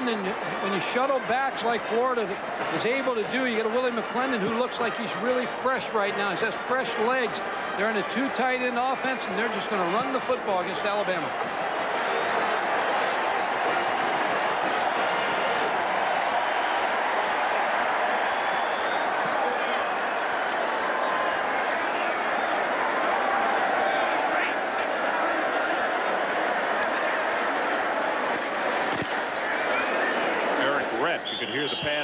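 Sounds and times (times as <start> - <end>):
stadium crowd din: 0.0 - 32.0.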